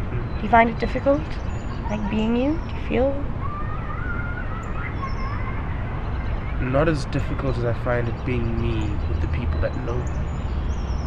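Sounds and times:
low outdoor rumble: 0:00.0 - 0:11.0
birds whistling: 0:00.2 - 0:06.7.

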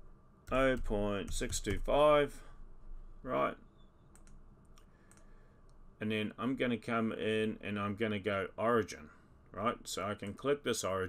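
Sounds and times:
computer mouse clicks: 0:04.0 - 0:05.8.

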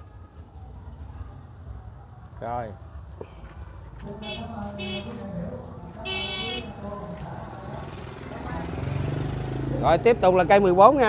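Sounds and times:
motorbike engine passing: 0:04.1 - 0:11.0
high vehicle horn beep: 0:04.2 - 0:05.3, 0:06.0 - 0:06.8.

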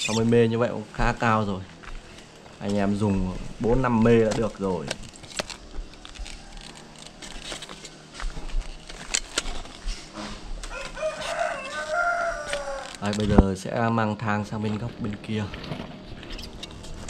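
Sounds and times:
rooster crowing: 0:06.2 - 0:08.3, 0:10.6 - 0:13.1.

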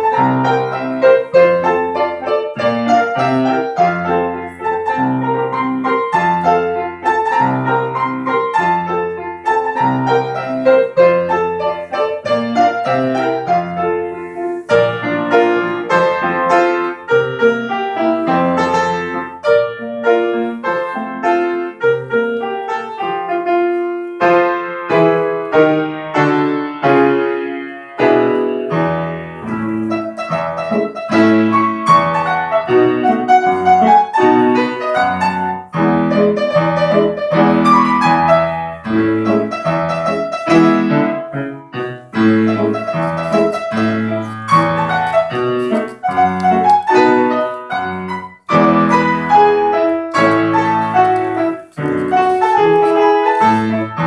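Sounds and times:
piano piece: 0:00.0 - 0:54.0.

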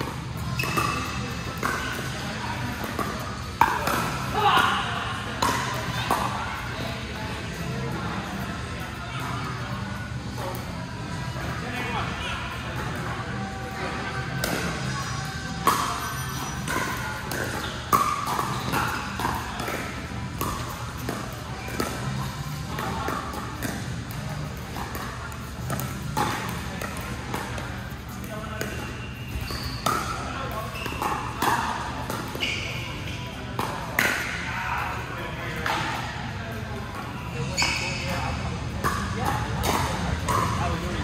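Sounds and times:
paddles hitting plastic ball: 0:16.7 - 0:32.5.

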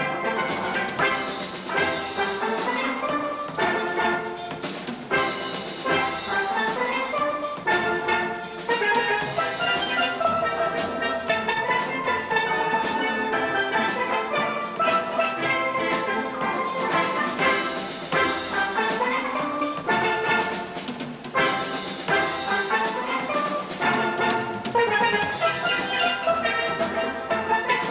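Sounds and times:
steel band playing: 0:00.0 - 0:27.9.

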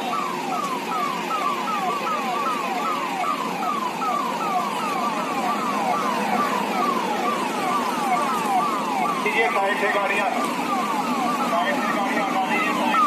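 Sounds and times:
passing vehicles: 0:00.0 - 0:13.0
police sirens wailing: 0:00.0 - 0:13.0.

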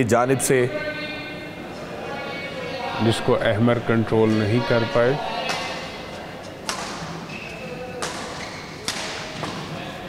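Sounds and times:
rackets striking shuttlecock: 0:06.6 - 0:07.3, 0:08.0 - 0:09.7.

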